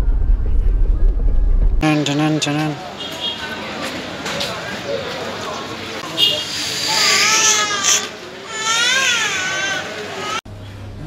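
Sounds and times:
baby crying: 6.9s - 10.4s.

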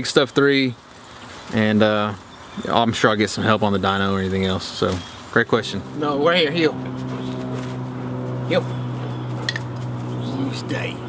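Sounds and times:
man speaking to dog: 1.5s - 6.8s, 10.2s - 11.0s
steady low hum: 4.2s - 11.0s.

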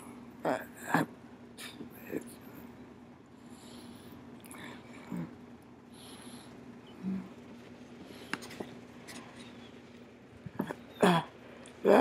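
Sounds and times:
faint steady hum: 0.0s - 12.0s
soft rustle: 7.4s - 10.1s.

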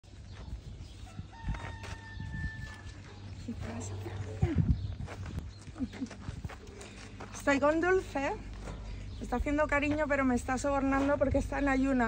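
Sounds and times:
rooster crowing: 1.1s - 3.0s.

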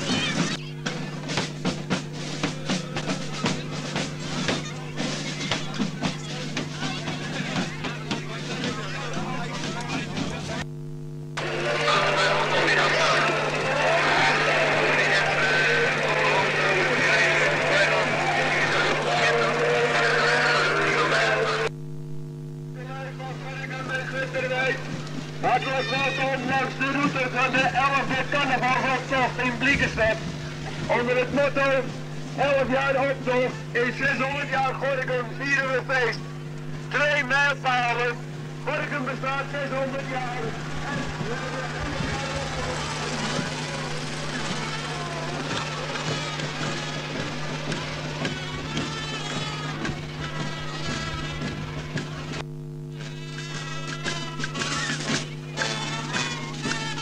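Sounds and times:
crowd voices: 0.0s - 10.7s, 11.4s - 21.8s, 22.8s - 57.0s
steady hum: 0.0s - 57.0s
tractor engine running: 11.4s - 21.7s, 22.9s - 52.5s.

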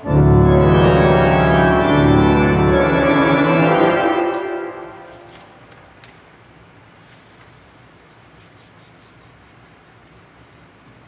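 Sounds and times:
low steady hum: 0.0s - 6.8s
paper rustling: 4.3s - 6.4s.

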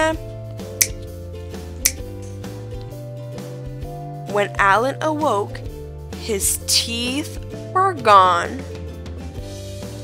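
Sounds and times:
soft background music: 0.0s - 10.0s
cartoon snap effects: 0.8s - 1.0s, 1.8s - 2.1s.

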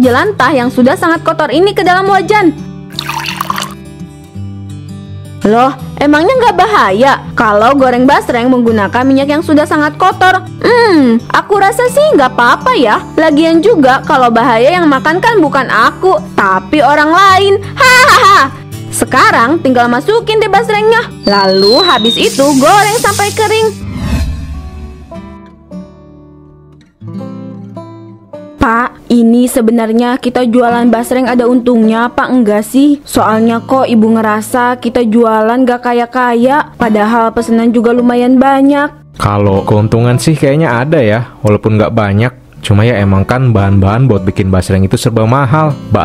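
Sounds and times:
background music: 0.0s - 46.0s
cartoon oil splash: 2.9s - 3.8s
plucked acoustic guitar: 24.6s - 28.6s.

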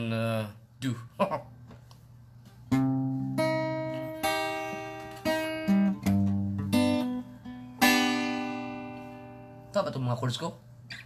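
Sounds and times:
acoustic guitar plucked notes: 2.6s - 9.8s.

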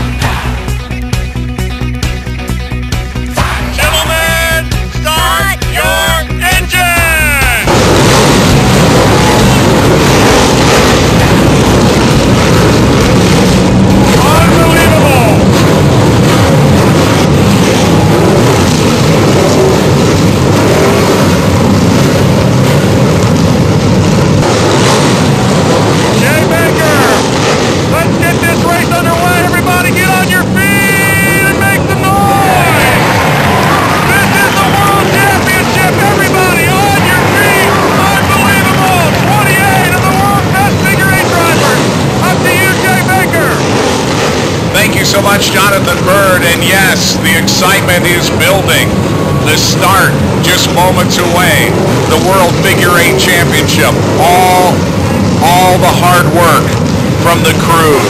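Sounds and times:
indistinct crowd voices: 0.0s - 1.8s, 2.7s - 58.0s
race car engines rumbling: 0.0s - 58.0s.

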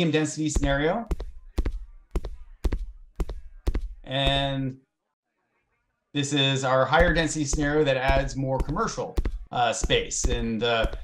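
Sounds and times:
footsteps: 0.6s - 4.6s, 6.9s - 11.0s.

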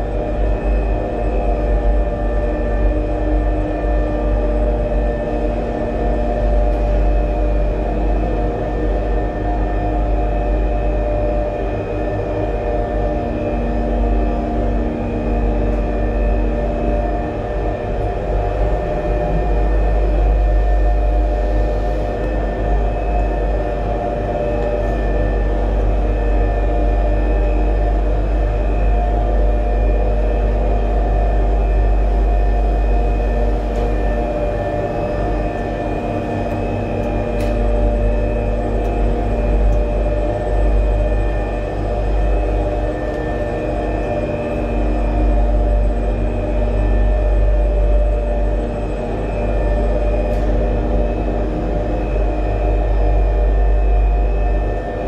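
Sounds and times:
cable car machinery humming: 0.0s - 55.0s.

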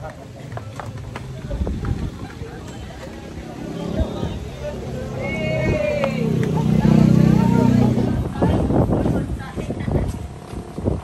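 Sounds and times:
footsteps: 0.0s - 4.1s
voices: 0.0s - 11.0s
vehicle engine running: 0.1s - 8.7s.

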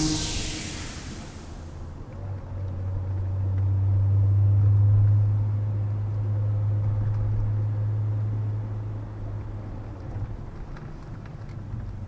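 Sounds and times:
car engine hum and road noise: 0.0s - 12.0s.

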